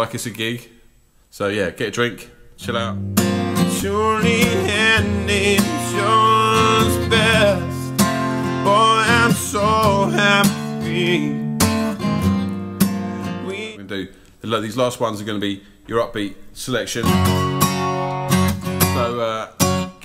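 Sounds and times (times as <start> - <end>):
strummed acoustic guitar: 2.6 - 13.8, 17.0 - 20.0
man singing: 3.6 - 11.9, 13.2 - 13.8.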